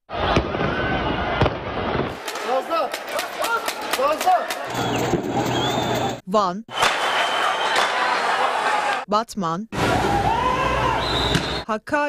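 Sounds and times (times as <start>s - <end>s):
people shouting: 0.1s - 9.0s, 9.8s - 11.6s
sharp bangs and pops: 0.2s - 0.8s, 1.4s - 4.4s, 6.7s - 7.9s.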